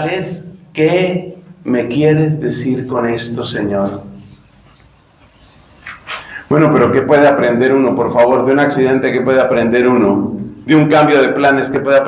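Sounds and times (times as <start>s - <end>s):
man talking into microphone: 0.0s - 4.3s, 6.4s - 12.0s
quick breath: 5.3s - 6.5s.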